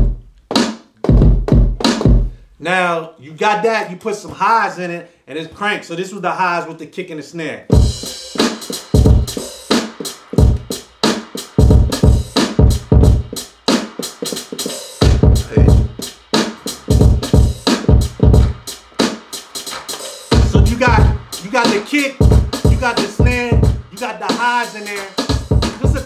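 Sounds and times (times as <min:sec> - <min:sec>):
hip hop drum pattern: 0:00.0 - 0:04.8, 0:07.7 - 0:26.0.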